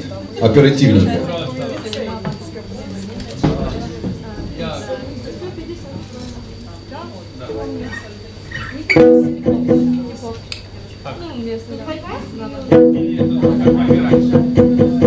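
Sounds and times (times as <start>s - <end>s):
people talking: 0.0s - 15.0s
acoustic guitar through speakers: 8.6s - 10.3s, 12.7s - 15.0s.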